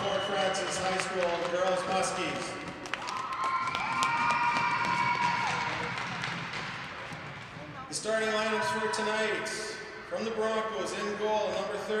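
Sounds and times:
crowd clapping and cheering: 0.0s - 8.5s
echoing public address voice: 7.6s - 12.0s.

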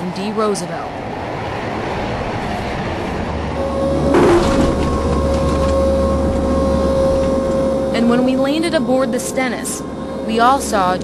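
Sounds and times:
aircraft engine rumble: 0.8s - 11.0s
steady whine: 2.4s - 11.0s.

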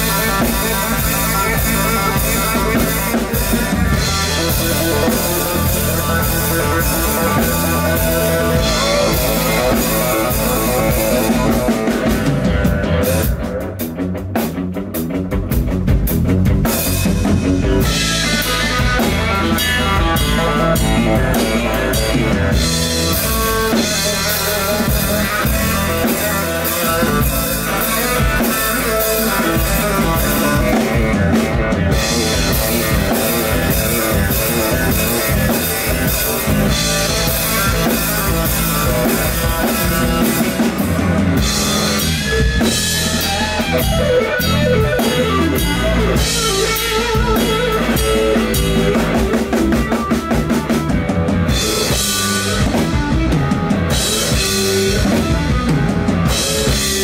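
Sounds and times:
drum kit: 0.0s - 57.0s
electric bass: 0.0s - 57.0s
lead electric guitar: 0.0s - 57.0s.

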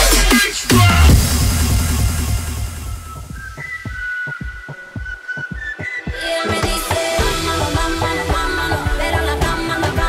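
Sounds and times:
kick drum thudding: 3.2s - 9.6s.

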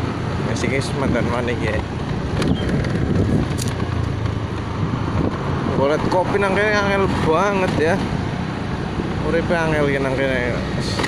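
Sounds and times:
wind buffeting microphone: 0.0s - 9.2s
road traffic: 0.0s - 11.0s.

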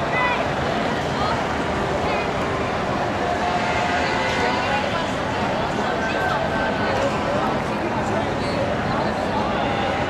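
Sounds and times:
crowd noise on busy street: 0.0s - 10.0s
steady horn-like tone: 3.4s - 5.4s.

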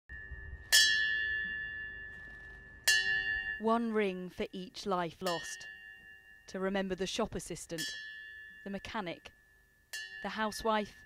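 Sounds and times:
bell ringing: 0.1s - 3.8s, 5.2s - 7.1s, 7.7s - 11.0s.

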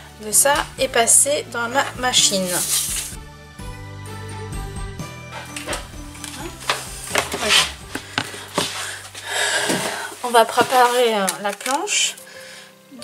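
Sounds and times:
background music: 0.0s - 13.0s
paper rustling: 2.4s - 3.2s, 5.4s - 12.2s.

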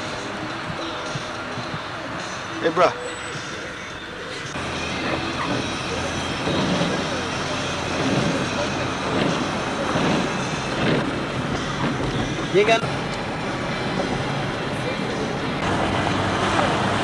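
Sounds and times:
car road and engine noise: 0.0s - 17.0s
faint voices: 0.0s - 17.0s.

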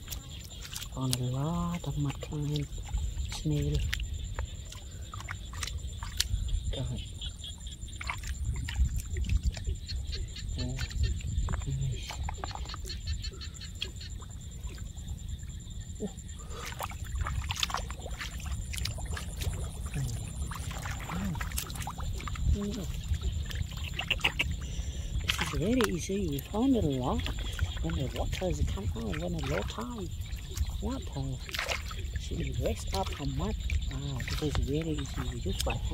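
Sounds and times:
hands splashing in muddy water: 0.0s - 7.0s, 7.9s - 9.7s, 16.4s - 35.9s.

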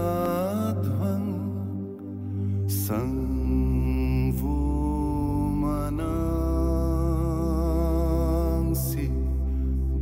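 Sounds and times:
devotional music with drone: 0.0s - 10.0s.

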